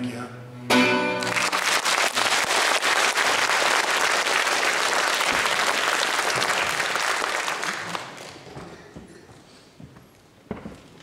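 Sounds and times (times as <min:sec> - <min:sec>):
audience applauding: 0:01.2 - 0:08.7.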